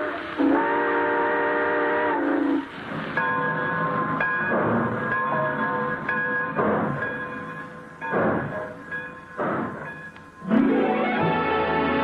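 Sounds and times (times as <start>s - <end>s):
train whistle chord: 0.0s - 2.6s, 10.4s - 12.0s
orchestral music: 10.4s - 12.0s.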